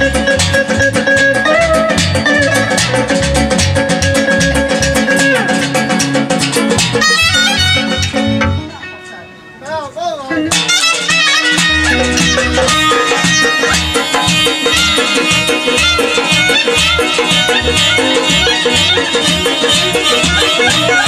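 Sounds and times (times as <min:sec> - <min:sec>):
clarinet: 0:00.0 - 0:05.6, 0:06.9 - 0:09.3, 0:10.3 - 0:21.0
steady drum rhythm: 0:00.0 - 0:08.7, 0:10.3 - 0:21.0
electric guitar: 0:00.0 - 0:21.0.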